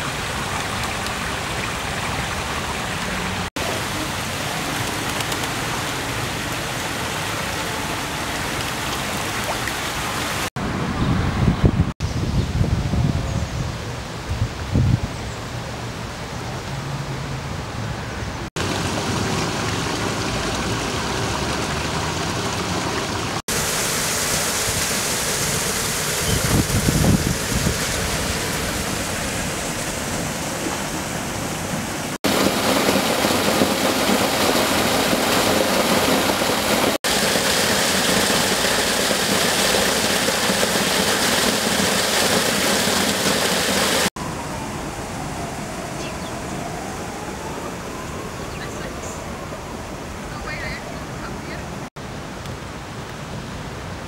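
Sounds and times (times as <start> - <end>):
rushing outdoor background noise: 0.0 - 54.0.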